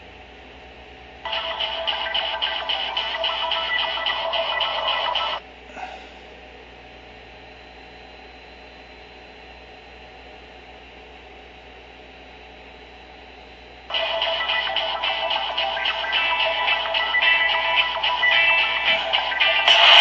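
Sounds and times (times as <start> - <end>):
music from phone speaker: 1.3 - 5.4, 13.9 - 20.0
thin high whine: 13.9 - 20.0.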